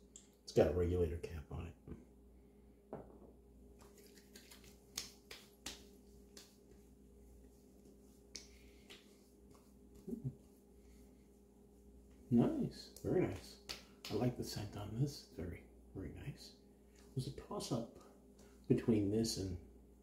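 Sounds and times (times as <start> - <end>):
hands slapping face: 3.8 - 6.8, 8.2 - 10.3, 12.9 - 14.4.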